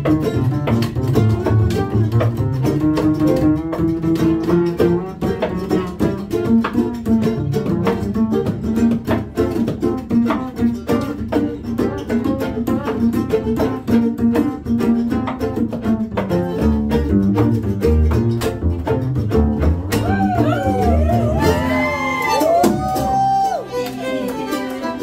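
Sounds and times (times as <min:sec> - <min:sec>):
acoustic guitar strumming: 0:00.0 - 0:25.0
fiddle bowing a melody: 0:00.0 - 0:25.0
upright bass: 0:00.0 - 0:25.0.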